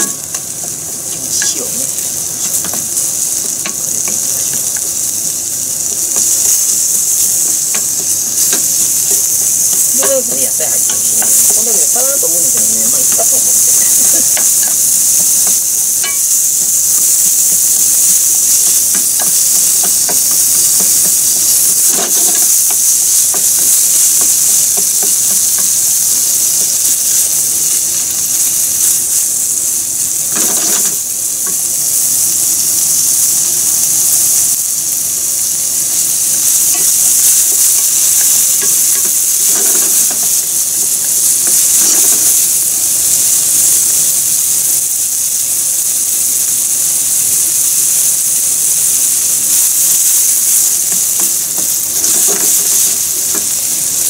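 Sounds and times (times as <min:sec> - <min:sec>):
meat sizzling in frying pan: 0:00.0 - 0:54.0.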